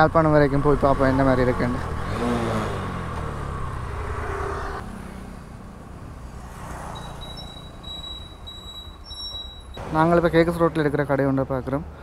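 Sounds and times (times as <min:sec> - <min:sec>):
motorcycle engine: 0:00.0 - 0:09.9.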